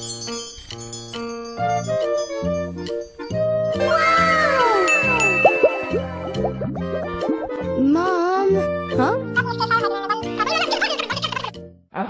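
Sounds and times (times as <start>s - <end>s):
children's music with bass line: 0.0s - 11.5s.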